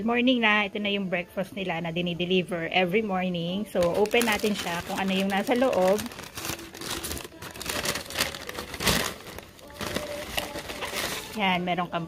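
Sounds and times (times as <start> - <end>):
paper bag crinkling: 3.7 - 11.5.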